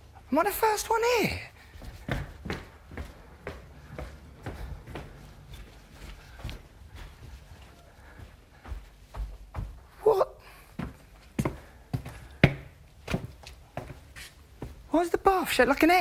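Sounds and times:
footsteps on hard floor: 0:01.7 - 0:10.0, 0:10.7 - 0:14.9.

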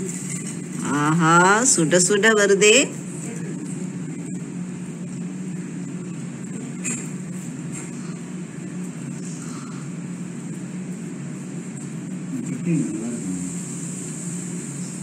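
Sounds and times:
low background hum: 0:00.0 - 0:15.0.

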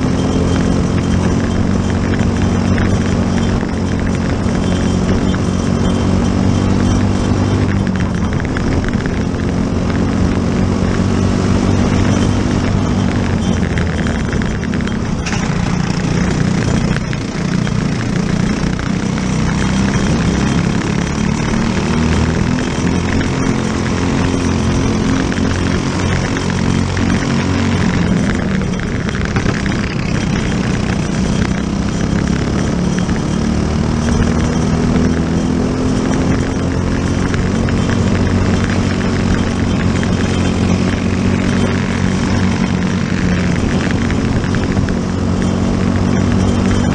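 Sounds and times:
racing kart engine: 0:00.0 - 0:46.9.

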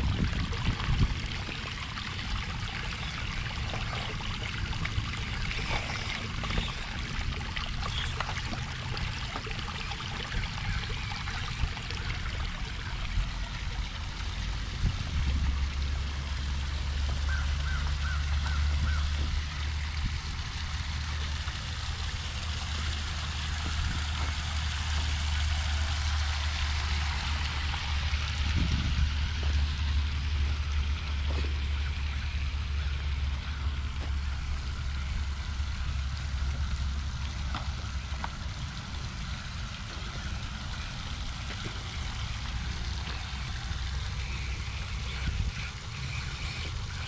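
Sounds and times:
wind rumbling on microphone: 0:00.0 - 0:16.6, 0:21.7 - 0:31.6
water trickling over rocks: 0:00.0 - 0:47.0.

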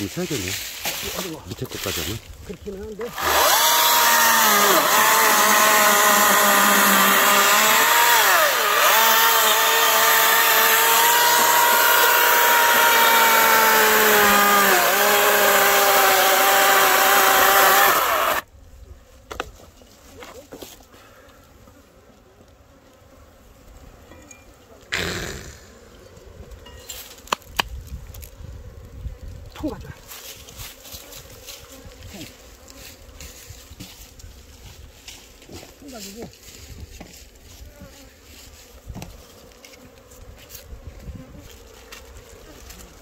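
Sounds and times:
loud scraping rustle: 0:00.0 - 0:03.7, 0:30.0 - 0:43.0
bees buzzing: 0:03.1 - 0:18.4
faint buzzing of bees: 0:18.4 - 0:43.0.

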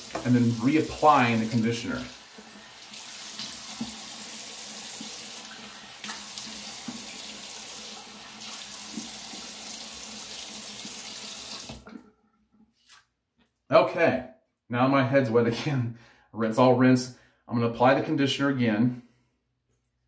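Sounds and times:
water running from tap: 0:00.0 - 0:11.8.

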